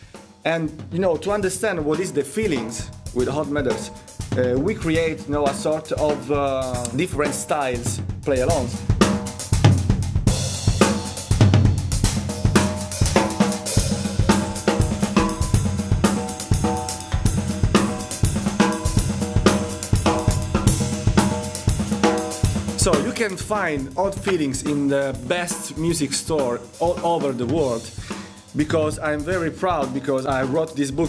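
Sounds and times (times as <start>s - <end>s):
backing track: 0.0s - 31.0s
drum kit groove: 0.0s - 31.0s.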